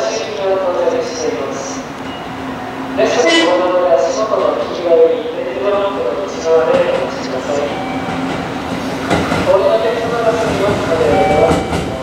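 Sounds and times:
freight train rumbling: 0.0 - 12.0.

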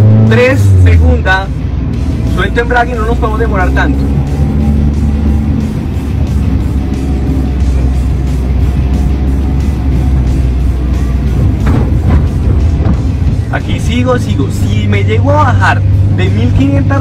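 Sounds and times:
background music: 0.0 - 17.0
car engine pulling at low revs: 0.0 - 17.0.

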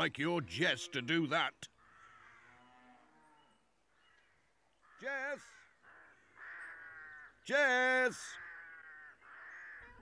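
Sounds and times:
crow cawing: 1.7 - 10.0.

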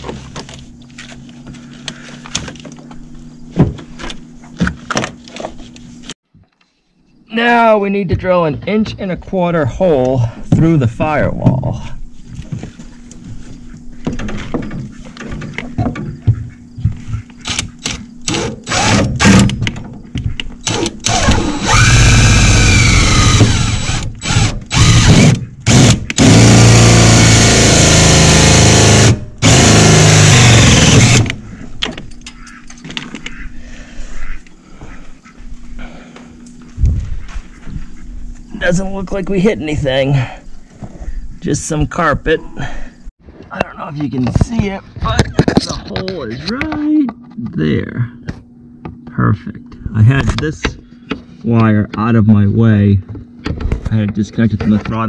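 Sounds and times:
cordless drill boring through metal: 17.4 - 19.4, 20.6 - 31.4.

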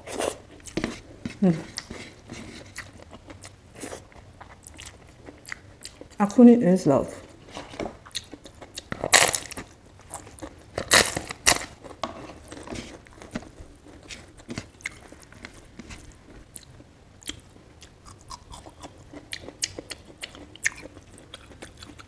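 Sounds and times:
chewing with small crunches: 0.0 - 6.4, 7.2 - 22.0
crisp wafer crunching: 8.1 - 17.4.

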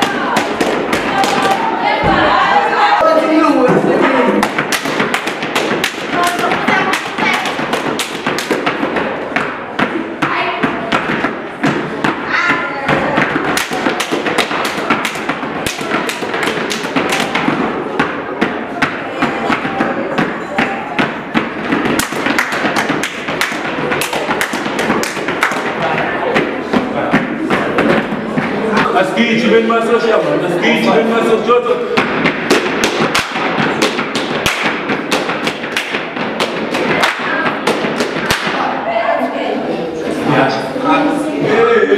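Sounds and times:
gumboot slaps and stamps: 4.4 - 28.9, 32.0 - 38.6.

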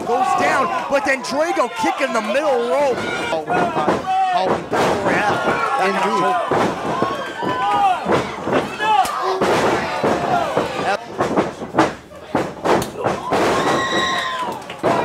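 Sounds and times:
people shouting: 0.0 - 11.0, 12.9 - 15.0
wrestlers smacking and thudding: 0.0 - 15.0.

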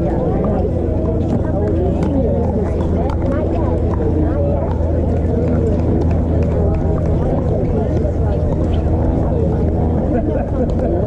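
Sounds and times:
chatter of voices: 0.0 - 11.0
steady low rumble: 0.0 - 11.0.

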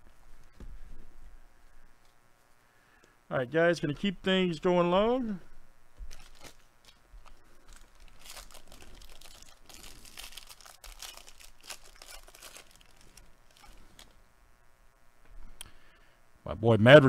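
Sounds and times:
card pack wrapper crinkling tearing: 6.1 - 14.2.

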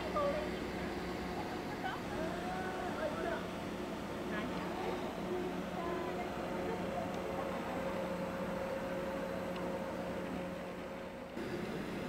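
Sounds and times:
faint distant voices: 0.0 - 9.8
low machine hum: 0.0 - 12.0.

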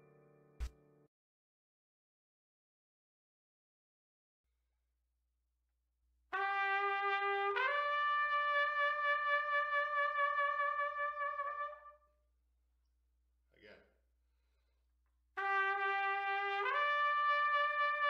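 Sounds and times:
solo trumpet: 6.3 - 12.2, 15.4 - 18.0.

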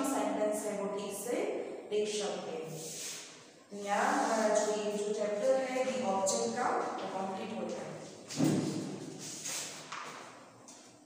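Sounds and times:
woman speaking: 0.0 - 3.1, 3.7 - 8.2
thud: 8.3 - 9.0.

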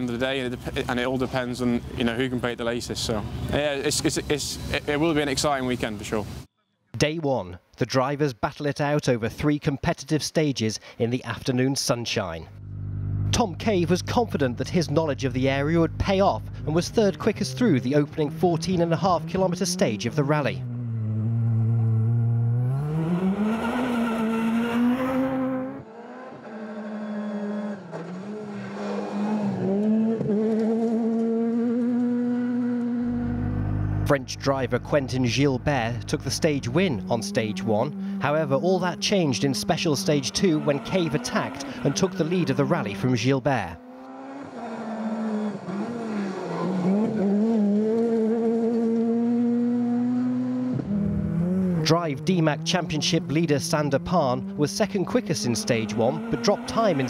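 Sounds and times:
rally car engine accelerating: 12.5 - 57.0.

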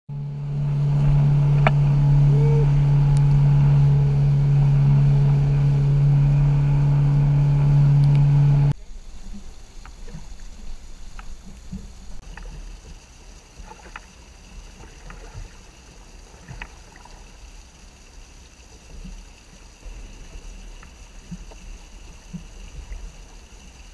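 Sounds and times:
boat motor running: 0.1 - 10.1
water noise: 0.1 - 23.9
wind: 0.1 - 23.9
light knocks and clicks on boat: 1.4 - 1.9.

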